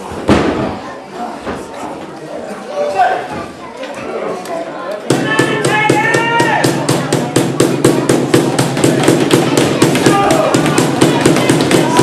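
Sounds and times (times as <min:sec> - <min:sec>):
rapid sharp bangs: 0:05.1 - 0:12.0.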